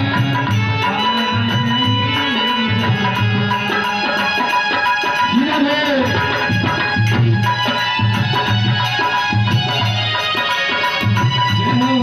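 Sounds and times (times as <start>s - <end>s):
electronic keyboard sustained notes: 0.0s - 12.0s.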